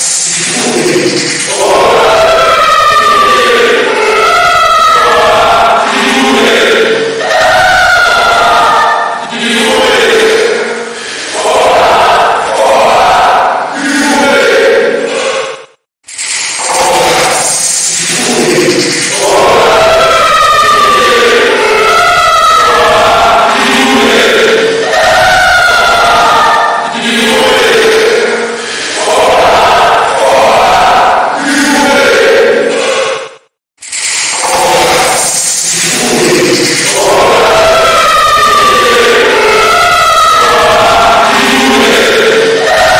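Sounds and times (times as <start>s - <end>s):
dense chorus-like voice drone: 0.0s - 42.9s.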